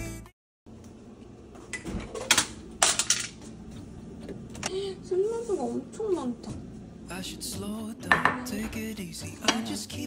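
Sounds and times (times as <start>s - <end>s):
kitchen items clicking and clinking: 1.8s - 3.4s.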